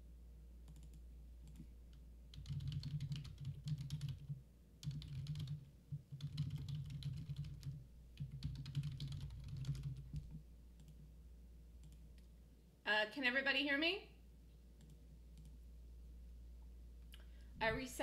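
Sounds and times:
typing on computer keyboard: 0:00.7 - 0:01.7, 0:02.3 - 0:11.0.

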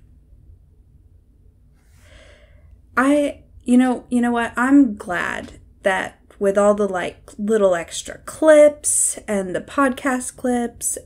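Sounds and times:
low room hum: 0:00.0 - 0:11.0
soft breath in: 0:01.8 - 0:02.8.

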